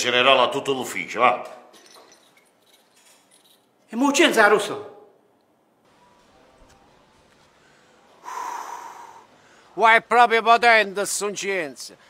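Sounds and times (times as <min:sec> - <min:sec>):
man breathing through mouth: 0:07.6 - 0:09.8.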